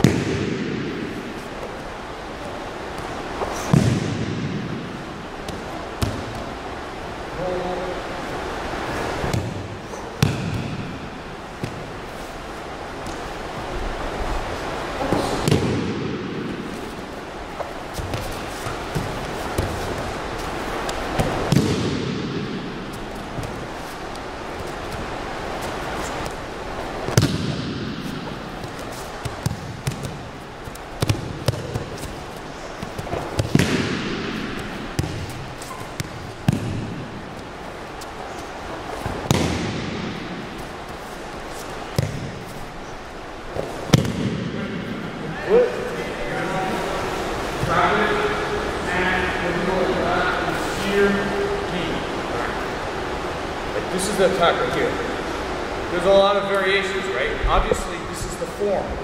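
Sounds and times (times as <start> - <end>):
body slapping onto gym mat: 0.0 - 1.7, 2.9 - 4.8, 15.1 - 16.9, 20.8 - 26.4, 27.1 - 37.0, 39.0 - 40.7, 41.5 - 42.7, 43.5 - 44.6.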